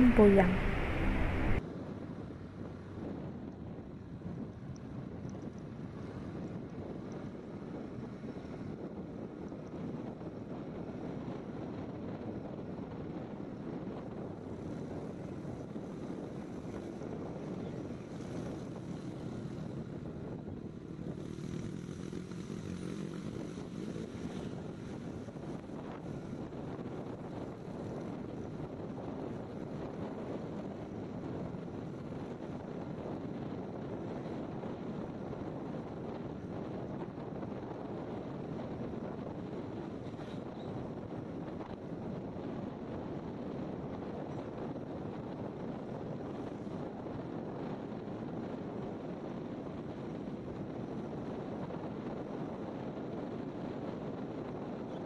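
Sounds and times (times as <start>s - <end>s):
scooter running and road noise: 0.0s - 55.0s
wind rush over microphone: 0.0s - 55.0s.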